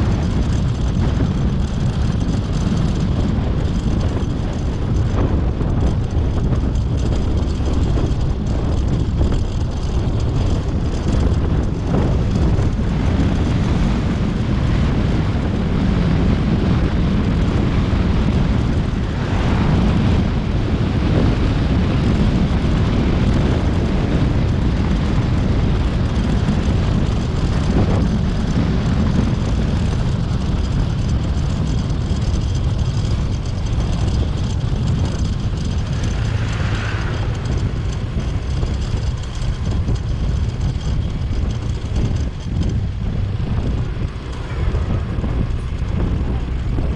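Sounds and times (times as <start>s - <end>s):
road and engine noise: 0.0s - 46.9s
wind buffeting microphone: 0.0s - 46.9s.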